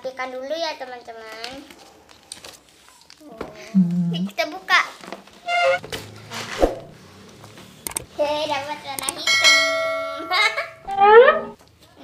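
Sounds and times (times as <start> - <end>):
ringing chime: 9.3 - 10.8.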